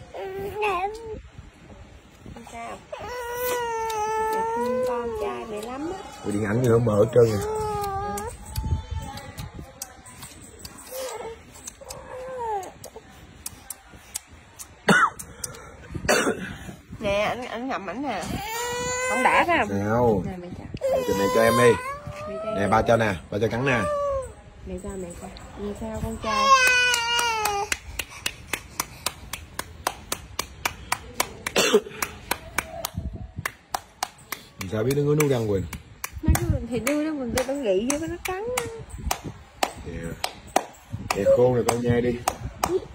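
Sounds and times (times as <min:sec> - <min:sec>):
infant wailing: 0:02.9 - 0:05.8, 0:20.8 - 0:24.3
cough-like vocal bursts: 0:14.8 - 0:15.3, 0:16.1 - 0:16.6, 0:31.6 - 0:32.0.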